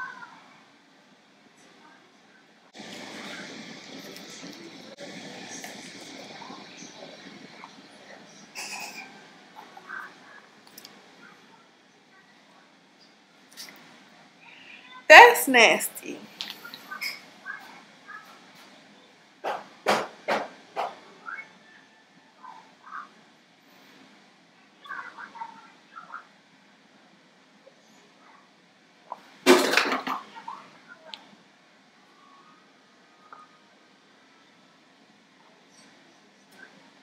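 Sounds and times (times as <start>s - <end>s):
murmurs and mouth noises: 2.8s - 11.4s.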